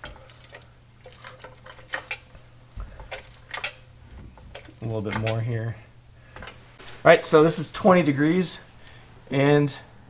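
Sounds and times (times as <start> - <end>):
low steady hum: 0.0 - 10.0
light metallic clicks and clinks: 3.0 - 3.8, 4.5 - 5.5.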